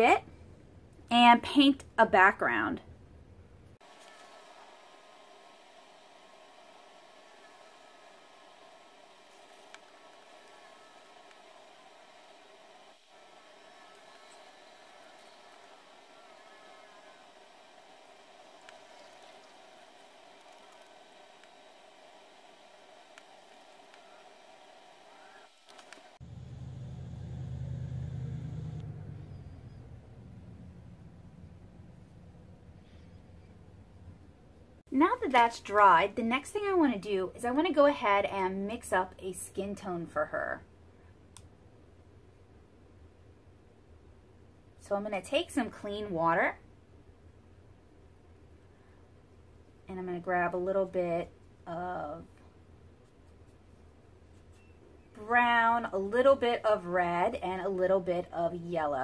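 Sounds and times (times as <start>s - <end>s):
faint room hum: 0.0s - 59.0s
low rumble: 26.2s - 34.4s.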